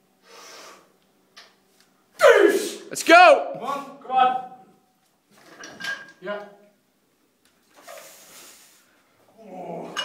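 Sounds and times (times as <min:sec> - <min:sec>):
person shouting with strain: 0:02.2 - 0:03.4.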